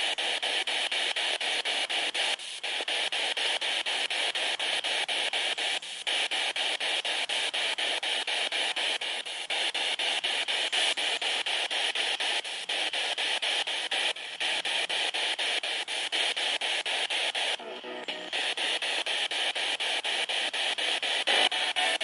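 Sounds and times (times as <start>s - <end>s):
radio static chopped into bursts: 0.0s - 22.0s.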